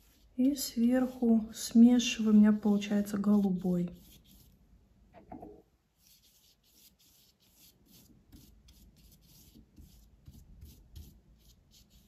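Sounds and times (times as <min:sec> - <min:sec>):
paintbrush rubbing on paper: 0:00.0 - 0:04.6, 0:06.0 - 0:12.0.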